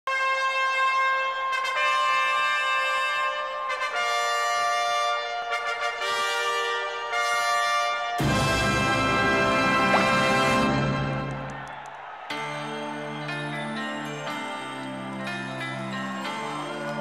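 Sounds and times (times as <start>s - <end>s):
brass fanfare chords: 0.1s - 13.0s.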